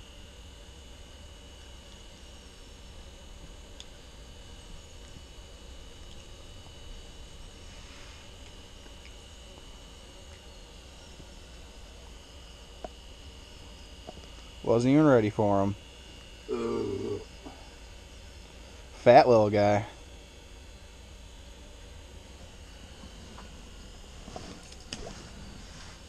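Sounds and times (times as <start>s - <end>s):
background hum and hiss: 0.0s - 26.0s
high constant whine: 0.0s - 26.0s.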